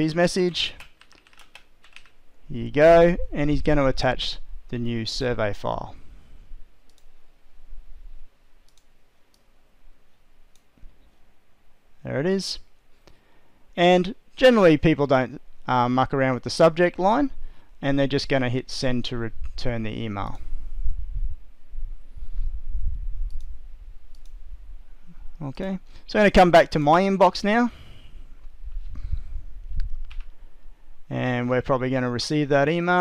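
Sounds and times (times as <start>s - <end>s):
computer mouse clicking: 0.8s - 2.2s, 6.9s - 7.1s, 8.6s - 9.5s, 24.1s - 24.4s
computer mouse clicks: 6.9s - 7.1s, 8.6s - 9.5s, 23.3s - 23.5s, 24.1s - 24.4s.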